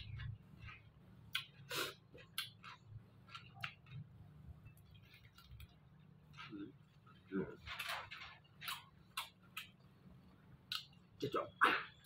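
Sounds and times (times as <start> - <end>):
wet chewing and lip-smacking: 0.1 - 5.8, 8.7 - 11.2.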